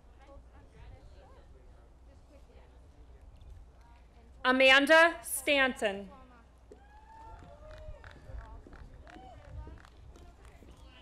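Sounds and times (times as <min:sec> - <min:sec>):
faint distant voices: 0:00.0 - 0:04.5.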